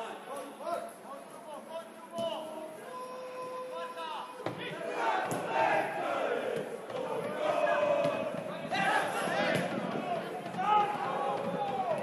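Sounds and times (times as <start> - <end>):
crowd shouting: 2.8 - 12.0.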